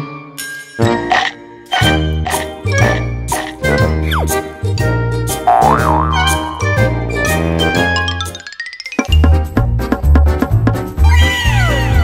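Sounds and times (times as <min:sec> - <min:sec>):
cheerful children's music: 0:00.0 - 0:12.0.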